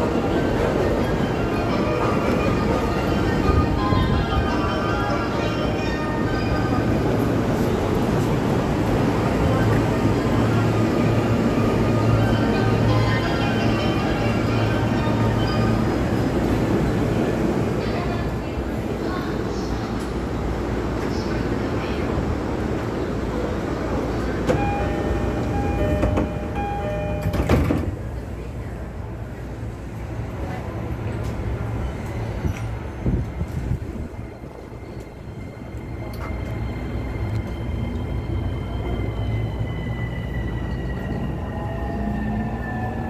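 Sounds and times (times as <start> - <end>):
electric train rumbling past: 0.0 - 43.0
electronic door chime: 24.6 - 27.6.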